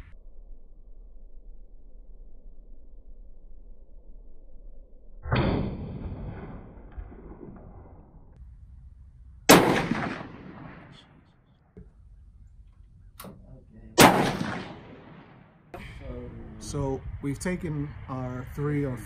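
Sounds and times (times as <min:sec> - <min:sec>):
rifle shots: 0:09.5 - 0:11.4, 0:14.0 - 0:15.7.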